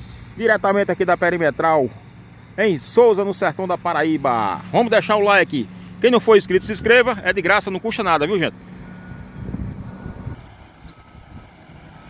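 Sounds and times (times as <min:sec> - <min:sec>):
distant earthmoving machinery rumble: 0:00.0 - 0:12.0
wind on microphone: 0:09.1 - 0:11.9.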